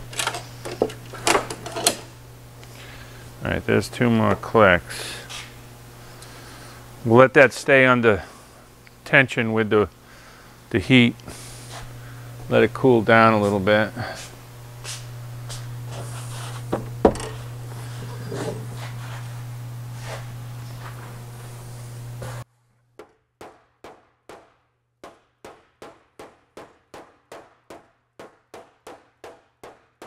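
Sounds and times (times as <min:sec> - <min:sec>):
low shop hum: 0:00.0 - 0:23.0.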